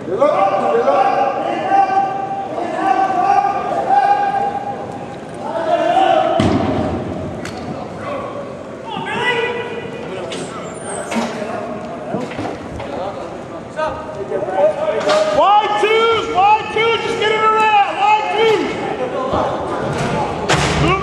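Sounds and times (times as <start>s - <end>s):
people shouting in a hall: 0.0s - 7.2s.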